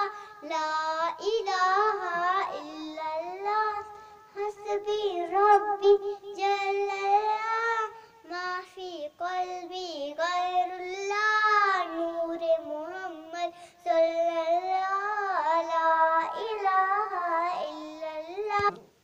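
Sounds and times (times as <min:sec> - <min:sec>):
girl singing unaccompanied: 0:00.0 - 0:19.0
short breaths: 0:00.1 - 0:00.4, 0:08.0 - 0:08.2, 0:13.5 - 0:13.8.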